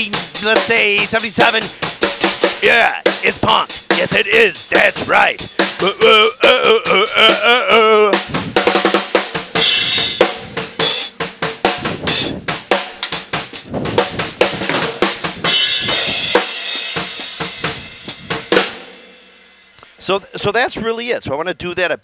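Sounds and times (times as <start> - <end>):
drum kit fast groove: 0.0 - 21.8.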